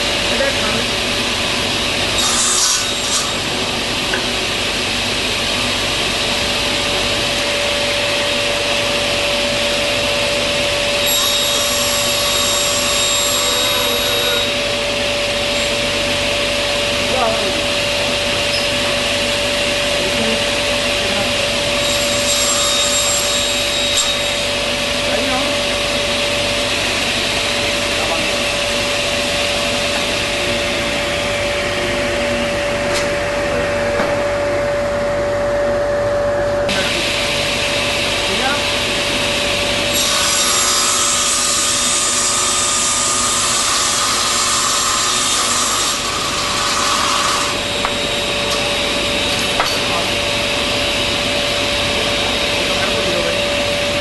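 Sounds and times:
table saw motor whining: 0:00.0 - 0:32.8, 0:36.7 - 0:54.0
saw blade cutting wood: 0:02.1 - 0:03.5, 0:11.0 - 0:14.6, 0:21.8 - 0:24.4, 0:39.9 - 0:48.0.

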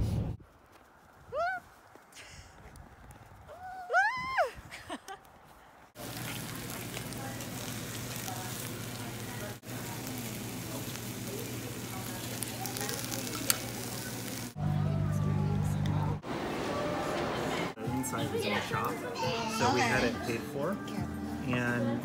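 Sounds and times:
rice sizzling in a stone bowl: 0:06.0 - 0:14.6
loud steady hum: 0:06.0 - 0:17.8
faint chatter: 0:06.0 - 0:22.0.

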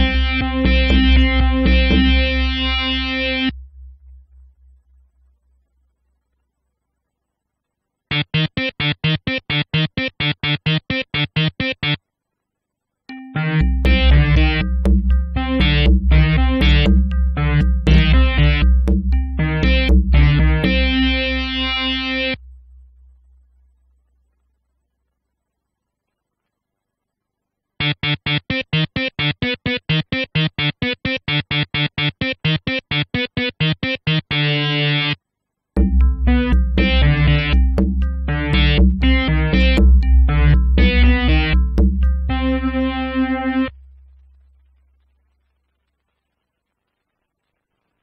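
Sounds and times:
synthesizer arpeggio: 0:00.0 - 0:04.6, 0:13.1 - 0:23.0, 0:35.8 - 0:44.2
pulsing deep bass: 0:00.0 - 0:05.2, 0:13.6 - 0:23.4, 0:35.8 - 0:43.5.

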